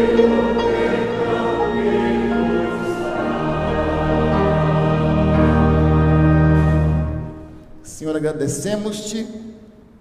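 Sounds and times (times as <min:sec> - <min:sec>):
congregation singing a hymn: 0:00.0 - 0:07.6
piano accompaniment: 0:00.0 - 0:08.3.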